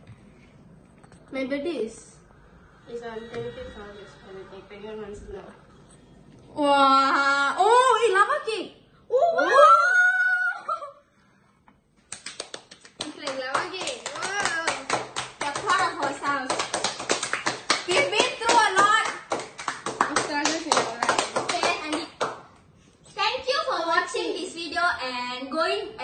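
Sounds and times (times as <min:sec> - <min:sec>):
fast hand clapping: 0:12.1 - 0:22.5.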